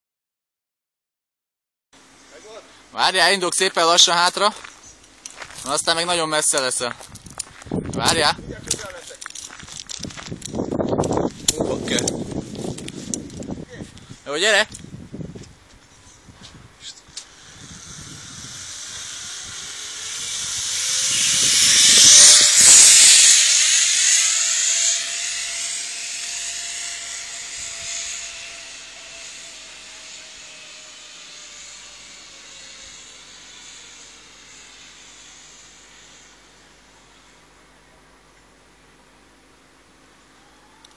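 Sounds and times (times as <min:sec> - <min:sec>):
zip-line trolley whirring on cable: 0:03.0 - 0:04.6, 0:16.8 - 0:37.5.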